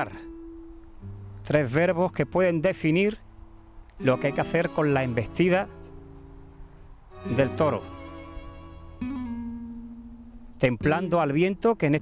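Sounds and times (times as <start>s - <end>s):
acoustic guitar notes: 0.0s - 12.0s.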